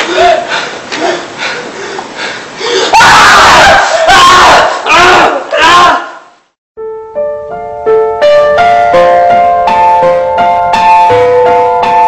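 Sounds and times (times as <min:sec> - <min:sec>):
high-pitched screams: 0:02.8 - 0:06.3
piano music: 0:06.8 - 0:12.0.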